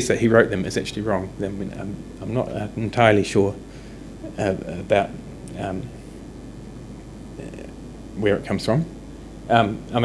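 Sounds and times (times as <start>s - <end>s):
low mains hum: 0.0s - 10.0s.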